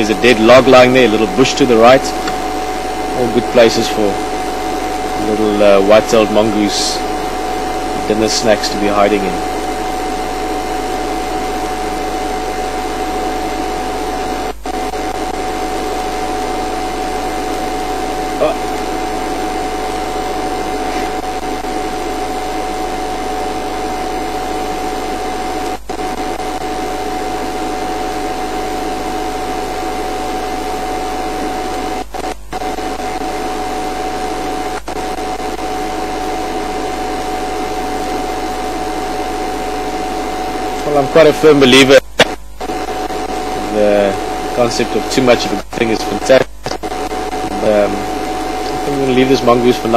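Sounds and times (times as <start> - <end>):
broadcast feed hiss and hum: 0.0 - 49.9
constant mid-pitched tone: 0.0 - 49.9.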